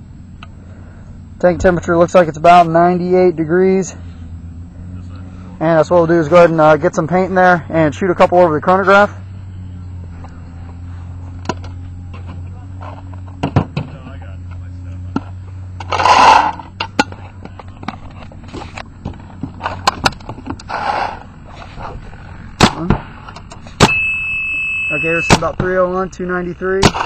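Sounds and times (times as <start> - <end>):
handling clicks and knocks: 16.6 - 20.7, 22.6 - 24.0
paintball marker shots: 22.6 - 23.2, 26.8 - 27.0.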